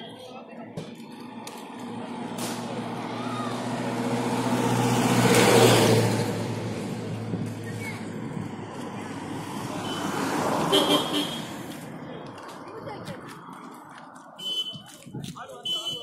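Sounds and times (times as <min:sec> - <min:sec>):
jeep engine passing by: 0:01.0 - 0:12.6.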